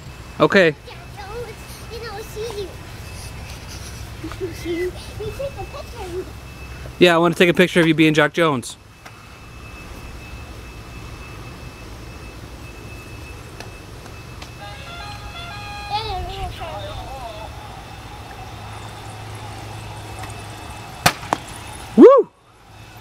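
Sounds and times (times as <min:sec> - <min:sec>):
electronic jingle: 0:14.6 - 0:21.0
low hum: 0:14.6 - 0:23.0.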